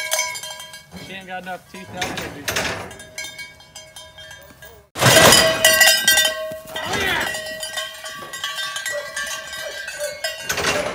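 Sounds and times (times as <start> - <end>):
cowbells clanking: 0.0 - 10.9.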